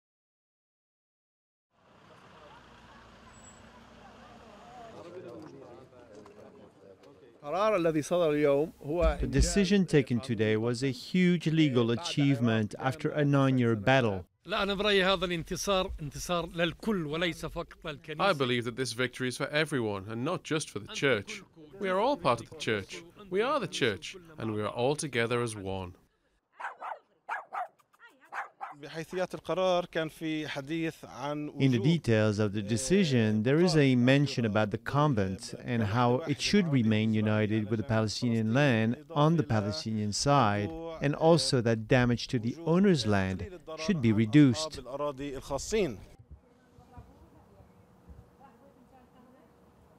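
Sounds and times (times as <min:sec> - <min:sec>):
distant traffic rumble: 0:01.8 - 0:06.8
dog barking: 0:26.6 - 0:28.8.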